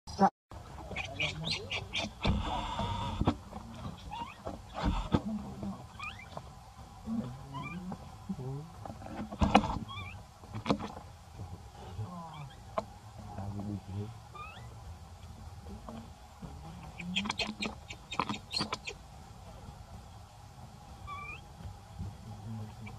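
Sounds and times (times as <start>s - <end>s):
baby monkey squeaking cries: 1.0s - 3.2s, 4.0s - 4.9s, 5.9s - 6.4s, 7.5s - 7.8s, 9.8s - 10.2s, 14.4s - 14.8s, 17.0s - 19.0s, 21.1s - 21.4s.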